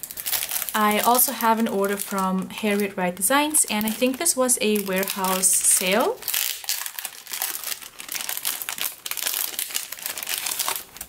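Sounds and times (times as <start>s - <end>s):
tissue paper and plastic crinkling: 0.0s - 11.0s.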